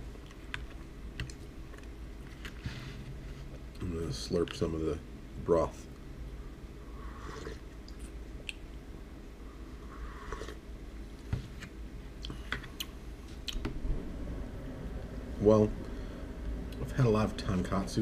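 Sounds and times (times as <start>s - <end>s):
person slurping broth: 7.0s - 7.7s, 9.9s - 10.6s.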